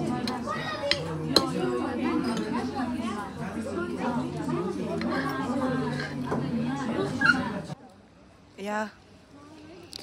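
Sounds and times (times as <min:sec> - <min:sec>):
voices chattering in restaurant: 0:00.0 - 0:10.0.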